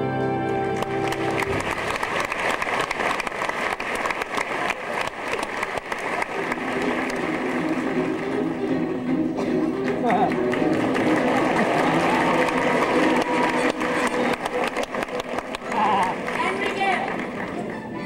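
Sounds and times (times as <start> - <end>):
orchestral stage music: 0.0 - 18.0
audience murmur: 1.2 - 18.0.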